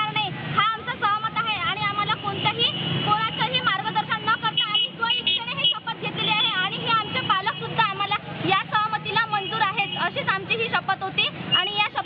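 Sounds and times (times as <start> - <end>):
woman speaking into a microphone: 0.0 - 12.0.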